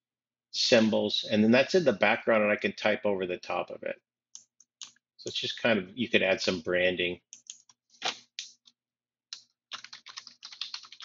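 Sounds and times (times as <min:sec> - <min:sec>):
typing on computer keyboard: 0:09.7 - 0:11.0.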